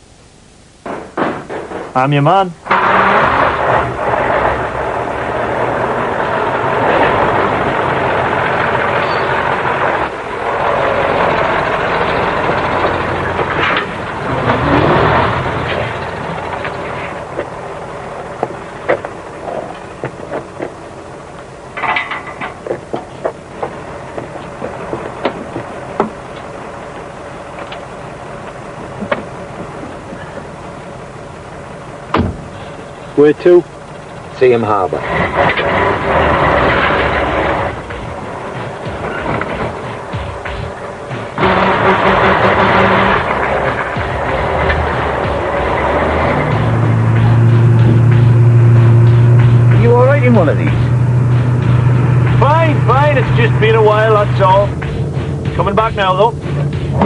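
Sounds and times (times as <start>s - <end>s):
lorry diesel engines running: 0.0s - 57.0s.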